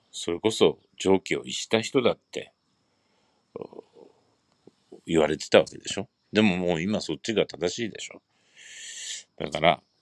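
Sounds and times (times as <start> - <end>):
man's low creaky murmur: 3.6 - 4.2, 4.8 - 7.2, 7.8 - 9.8.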